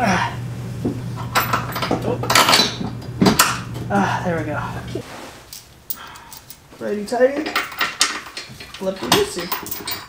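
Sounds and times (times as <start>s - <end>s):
steady low hum: 0.0s - 7.4s
metal bolt clinking and scraping: 1.2s - 3.6s, 7.4s - 10.0s.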